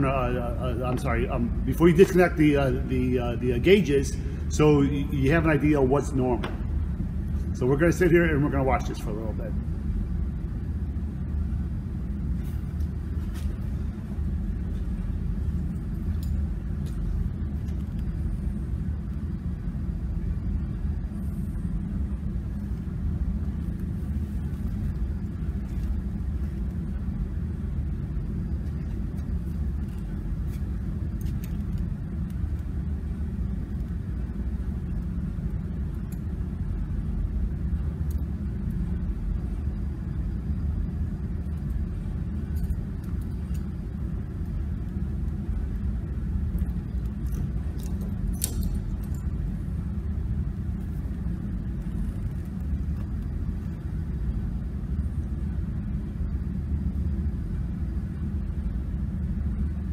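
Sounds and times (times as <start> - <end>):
machinery rumbling: 0.0 - 55.5.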